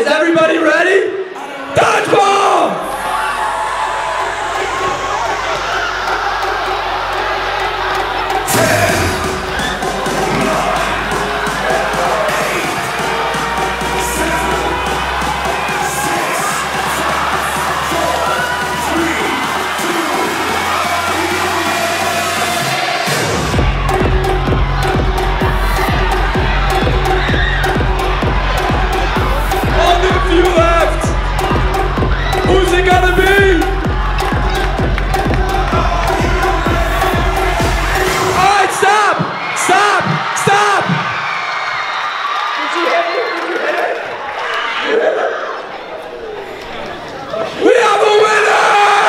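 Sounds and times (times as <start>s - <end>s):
crowd cheering and shouting: 0.0s - 49.0s
dance music over pa: 2.8s - 41.2s.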